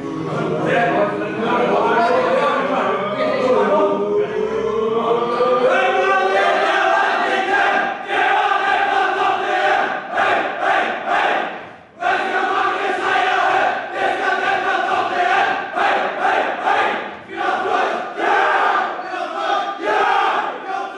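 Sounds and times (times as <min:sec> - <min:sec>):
men singing and chanting: 0:00.0 - 0:20.9.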